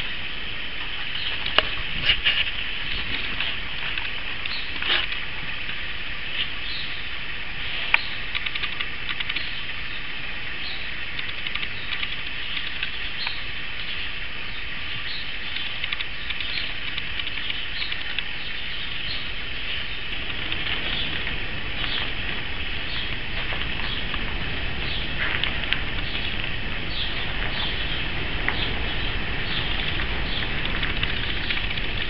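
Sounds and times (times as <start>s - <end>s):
sharp click: 7.9s - 9.5s, 11.2s - 13.4s, 15.5s - 18.3s
faint low rumble: 18.6s - 32.0s.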